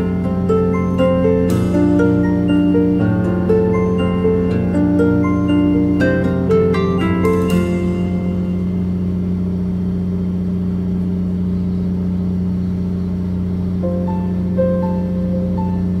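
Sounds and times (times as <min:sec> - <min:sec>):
plucked notes: 0:00.0 - 0:09.4
simple melody: 0:00.0 - 0:09.7, 0:13.8 - 0:16.0
boat engine humming: 0:00.0 - 0:16.0.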